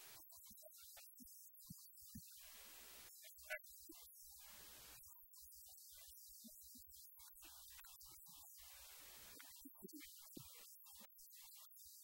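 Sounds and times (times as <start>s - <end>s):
faint hiss: 1.0s - 6.8s, 7.4s - 12.0s.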